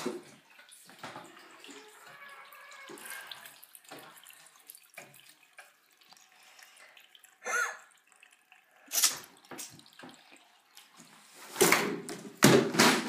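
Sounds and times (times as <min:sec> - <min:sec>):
tap water running into sink: 0:00.0 - 0:12.9.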